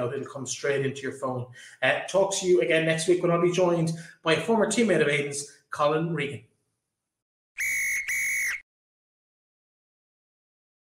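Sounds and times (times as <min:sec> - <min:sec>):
referee whistle blasts: 0:07.6 - 0:08.6.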